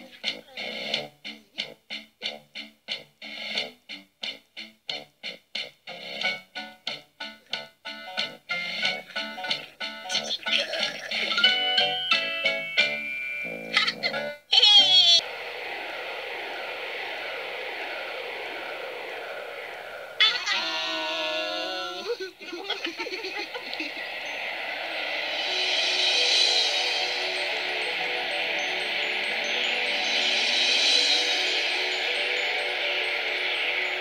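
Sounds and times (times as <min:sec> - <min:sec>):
bouncy plucked tune: 0:06.6 - 0:15.2
warbling sound: 0:15.2 - 0:20.6
shimmering whoosh: 0:15.2 - 0:21.6, 0:22.5 - 0:34.0
twinkling chimes: 0:22.7 - 0:25.7, 0:26.5 - 0:34.0.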